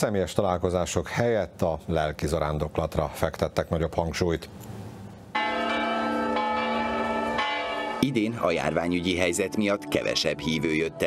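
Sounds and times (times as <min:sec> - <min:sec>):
church bells ringing: 0:05.4 - 0:10.9.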